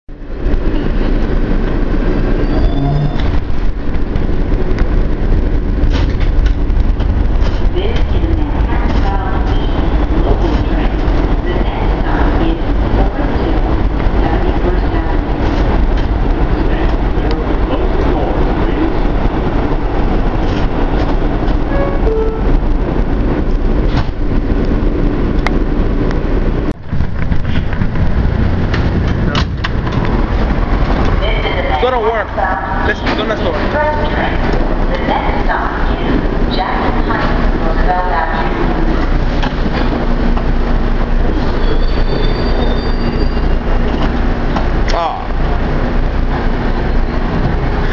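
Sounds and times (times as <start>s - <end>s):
subway train rumbling on rails: 0.1s - 47.9s.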